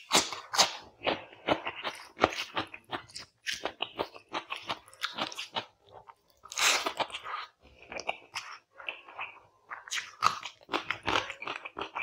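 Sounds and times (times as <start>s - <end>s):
crunchy chewing of cucumber: 0.0s - 12.0s.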